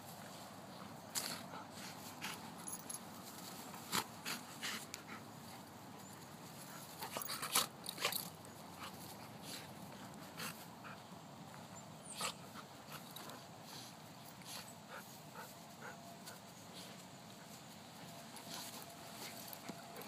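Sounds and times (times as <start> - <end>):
dogs mouthing and scuffling: 0.3 - 20.0.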